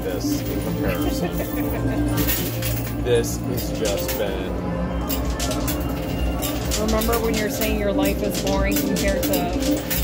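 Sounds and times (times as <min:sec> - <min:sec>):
coins clinking into coin pusher: 0:00.0 - 0:10.0
slot machine music: 0:00.0 - 0:10.0
chatter: 0:00.1 - 0:09.8.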